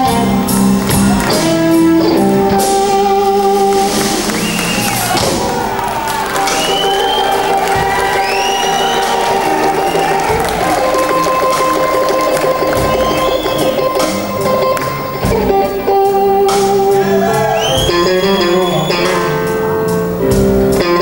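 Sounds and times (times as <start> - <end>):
crowd cheering: 0.0 - 21.0
electric blues band playing: 0.0 - 21.0.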